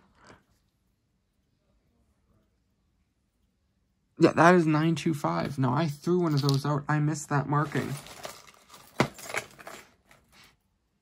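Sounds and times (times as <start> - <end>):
jewelry clinking and jangling: 6.0 - 6.9, 7.6 - 10.5.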